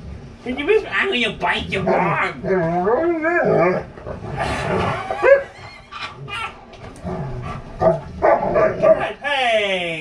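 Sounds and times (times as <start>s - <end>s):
dogs whining: 1.8s - 9.0s
dog yelp: 4.9s - 6.6s.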